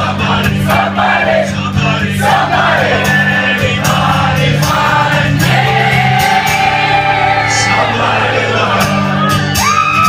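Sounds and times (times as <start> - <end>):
man singing into microphone: 0.0 - 6.6, 7.3 - 9.6
acoustic guitar: 0.0 - 10.0
voices singing along: 0.0 - 10.0.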